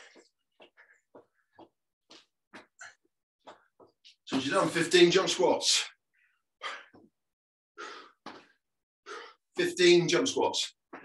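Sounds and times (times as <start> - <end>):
person breathing hard: 7.8 - 9.5.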